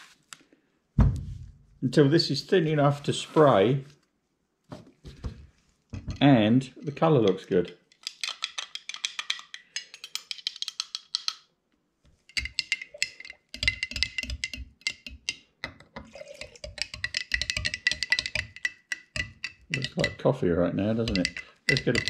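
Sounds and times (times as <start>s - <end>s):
stirrer clinking in glass jar: 6.0s - 11.4s, 12.2s - 22.0s.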